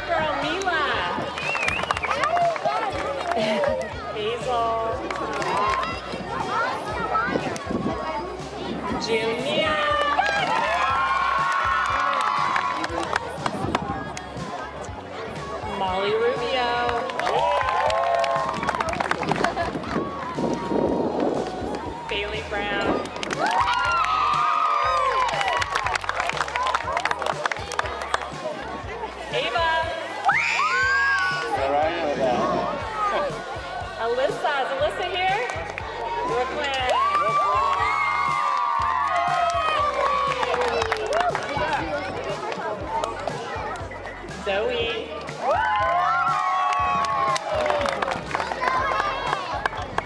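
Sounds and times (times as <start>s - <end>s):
scattered clapping: 0.5s - 4.0s, 5.0s - 6.0s, 10.0s - 14.3s, 16.8s - 21.9s, 22.9s - 28.6s, 35.3s - 43.9s, 45.1s - 50.0s
girls cheering and shouting: 2.0s - 4.2s, 5.6s - 13.0s, 19.5s - 22.4s, 23.3s - 27.0s, 30.1s - 31.6s, 35.9s - 41.9s, 45.4s - 49.8s
young girls cheering: 23.3s - 26.0s, 30.2s - 31.5s, 36.9s - 41.4s, 45.4s - 49.6s
hand clapping: 25.2s - 28.3s, 47.0s - 50.0s.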